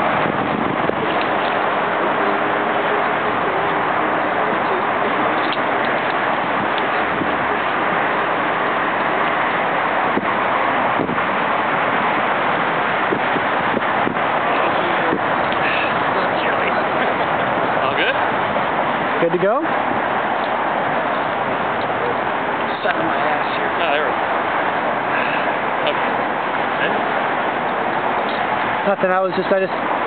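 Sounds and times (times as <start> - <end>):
wind noise on microphone: 0.0 - 30.0.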